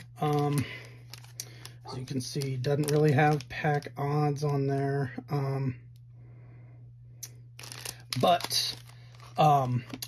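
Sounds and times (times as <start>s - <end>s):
foil pack crinkling: 0.0s - 4.7s, 7.5s - 10.0s
faint steady hum: 0.0s - 10.0s.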